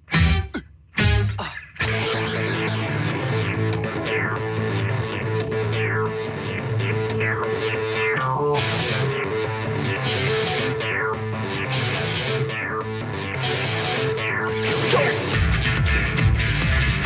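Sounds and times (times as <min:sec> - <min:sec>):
bass line: 0:00.0 - 0:17.0
electric guitars playing rock: 0:00.0 - 0:17.0.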